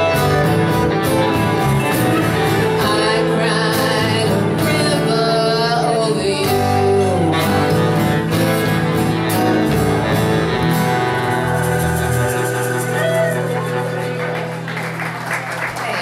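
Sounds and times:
drums: 0.0 - 5.4, 6.4 - 14.7
acoustic guitar: 0.0 - 16.0
electric guitar: 0.0 - 16.0
woman singing: 2.6 - 7.9.

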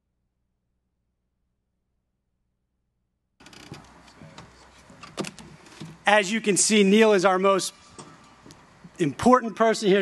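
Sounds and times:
microphone handling rustling and knocks: 3.4 - 6.0.

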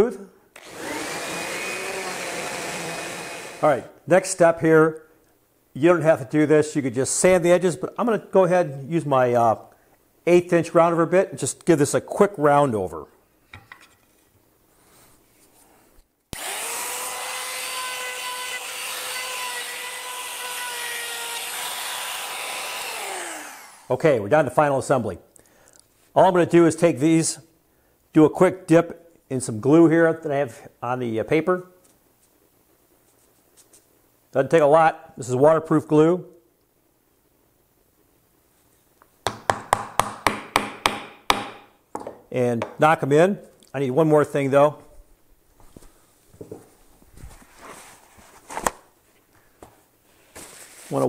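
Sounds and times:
router high whine: 0.6 - 3.6, 16.4 - 23.9
faint handling sounds: 31.8 - 34.0, 44.8 - 51.0
hammer tapping wooden dowels: 39.2 - 42.8.

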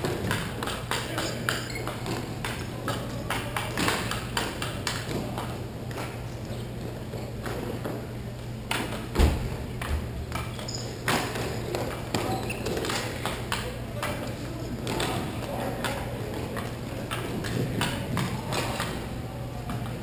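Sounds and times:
hockey sticks and puck clacking: 0.0 - 20.0
steady low hum: 0.0 - 20.0.

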